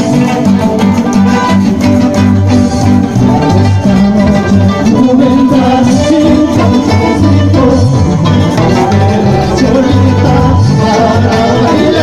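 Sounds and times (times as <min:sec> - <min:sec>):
plucked guitar: 0:00.0 - 0:12.0
strong bass line: 0:00.0 - 0:12.0.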